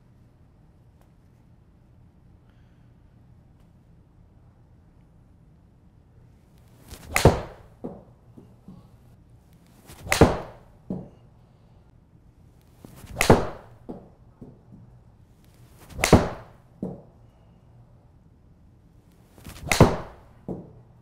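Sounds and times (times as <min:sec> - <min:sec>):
golf club swish: 0:06.7 - 0:07.7, 0:09.7 - 0:10.7, 0:12.8 - 0:14.0, 0:15.5 - 0:16.6, 0:19.2 - 0:20.3
clubface cracking against ball: 0:06.9 - 0:08.1, 0:09.9 - 0:11.2, 0:12.9 - 0:14.6, 0:15.8 - 0:17.1, 0:19.4 - 0:20.7
ball thudding on screen: 0:06.9 - 0:08.8, 0:09.9 - 0:11.2, 0:12.9 - 0:14.8, 0:15.8 - 0:17.1, 0:19.5 - 0:20.8.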